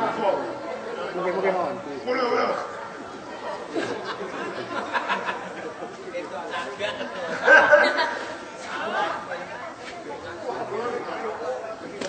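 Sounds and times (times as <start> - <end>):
background chatter: 0.0 - 12.0
voices talking: 0.0 - 12.0.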